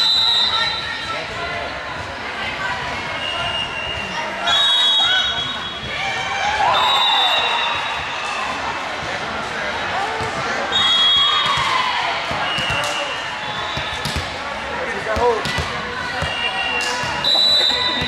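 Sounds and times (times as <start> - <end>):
shrill referee whistle blasts: 0.0 - 1.0, 3.2 - 6.0, 6.7 - 7.9, 10.7 - 11.6, 12.4 - 14.0, 16.2 - 18.0
balls bouncing on court: 10.0 - 10.6, 11.4 - 13.0, 13.7 - 18.0.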